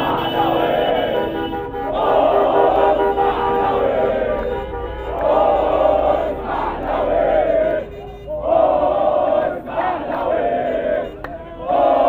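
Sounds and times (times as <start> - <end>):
crowd chanting in unison: 0.0 - 12.0.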